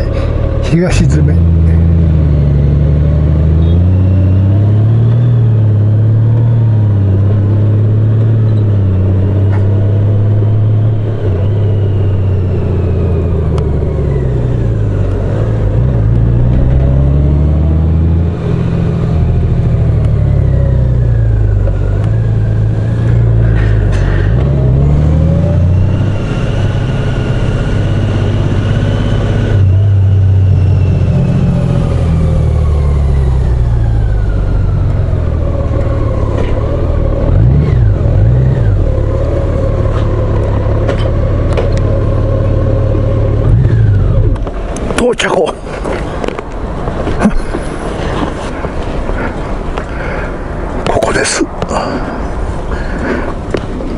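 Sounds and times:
road and wind noise: 0.0s - 53.9s.

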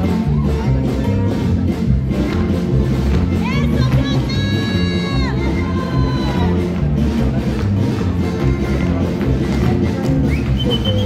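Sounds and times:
polka band playing: 0.0s - 11.0s.

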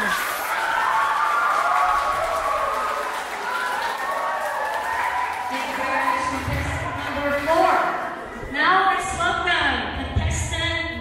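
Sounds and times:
audience applauding: 0.0s - 8.3s
voices cheering and calling out: 0.0s - 8.6s.

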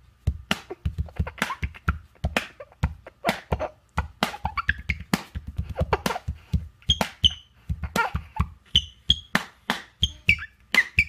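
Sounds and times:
quick rhythmic drum beat: 0.3s - 8.6s.

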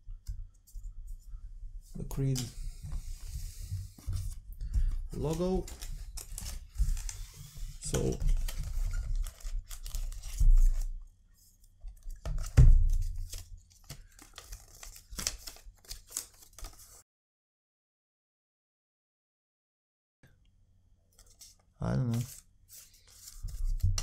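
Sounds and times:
paper rustling: 2.2s - 10.9s, 11.9s - 17.0s, 21.2s - 24.0s.

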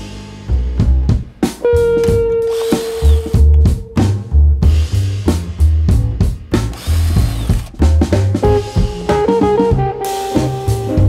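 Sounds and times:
background music with drums: 0.0s - 11.0s
power tool whirring: 2.4s - 3.5s, 6.7s - 7.8s.

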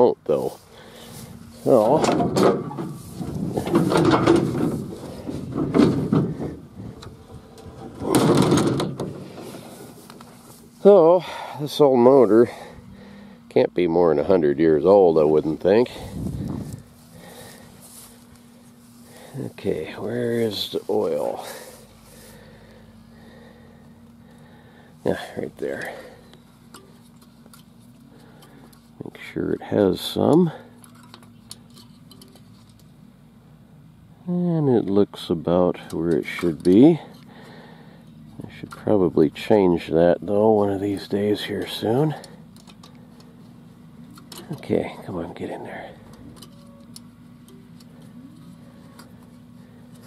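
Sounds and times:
rustling and scraping handling: 0.0s - 13.3s, 14.1s - 24.2s, 25.0s - 33.0s, 40.4s - 50.0s
faint steady low hum: 0.0s - 50.0s.

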